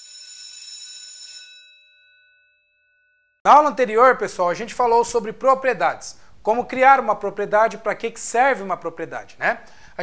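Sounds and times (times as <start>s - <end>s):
bell-like chime: 0.0s - 3.4s.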